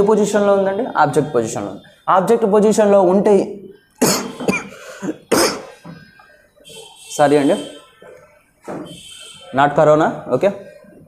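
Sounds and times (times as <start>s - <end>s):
man coughing: 4.0s - 5.9s.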